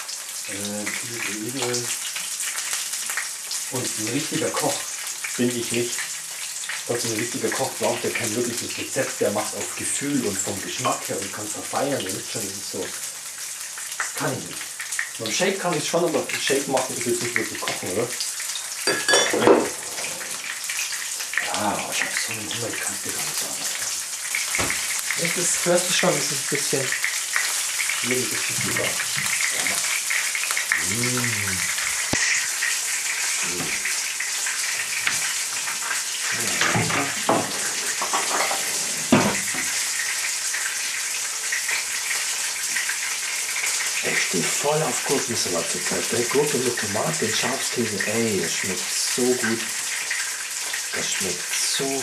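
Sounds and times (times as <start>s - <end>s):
fish frying in a pan: 0.0s - 52.0s
food sizzling in oil: 0.0s - 52.0s.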